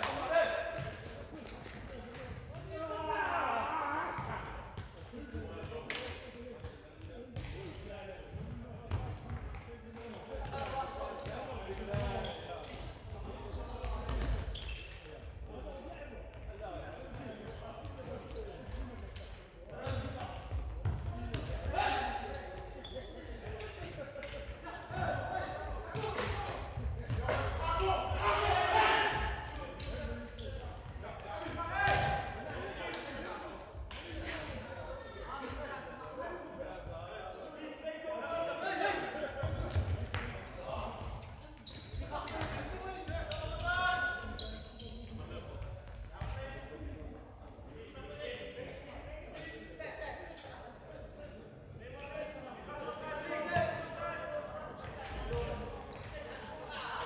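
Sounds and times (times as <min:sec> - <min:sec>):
players shouting: 0:27.4 - 0:29.4.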